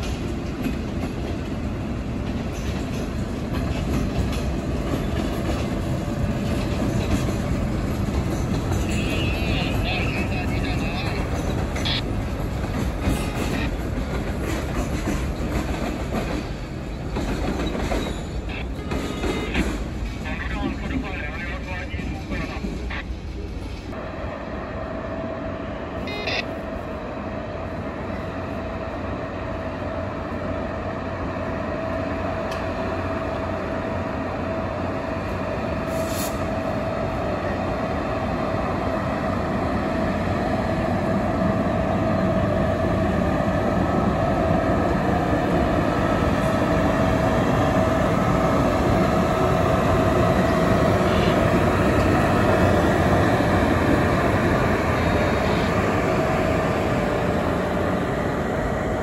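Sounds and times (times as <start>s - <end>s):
electric locomotive running: 0.0s - 59.0s
locomotive steady whine: 0.0s - 59.0s.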